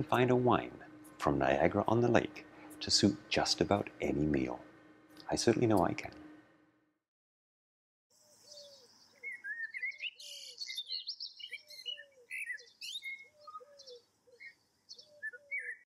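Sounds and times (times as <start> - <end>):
birds chirping and trilling: 0.0 - 6.5, 8.1 - 15.9
low repeated bird call: 8.2 - 15.9.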